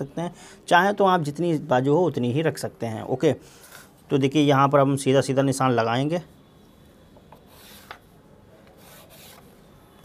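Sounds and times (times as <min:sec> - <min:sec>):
chalk rubbing on cloth: 0:07.5 - 0:08.0, 0:08.7 - 0:09.6.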